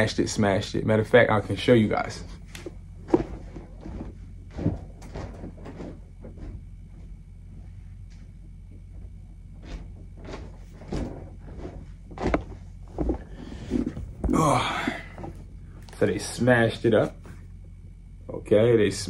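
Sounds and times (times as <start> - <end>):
low steady hum: 0.0 - 19.0
knocks and handling bumps: 2.5 - 15.5.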